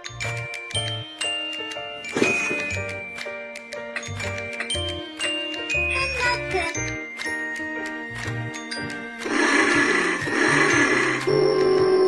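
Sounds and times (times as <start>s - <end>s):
background music: 0.0s - 12.0s
toy motorcycle engine sound effect: 9.2s - 12.0s.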